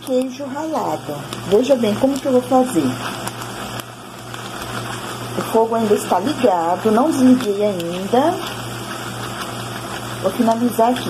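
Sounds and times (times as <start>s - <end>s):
pot simmering with sizzling hiss: 0.0s - 11.0s.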